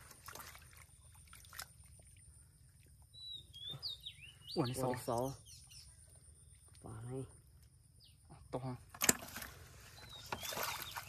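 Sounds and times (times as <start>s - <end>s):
hands sloshing in muddy water: 0.0s - 3.0s, 9.0s - 11.0s.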